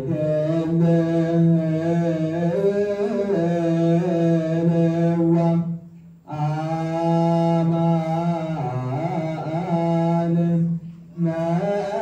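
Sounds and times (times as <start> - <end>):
men chanting a hymn: 0.0 - 12.0.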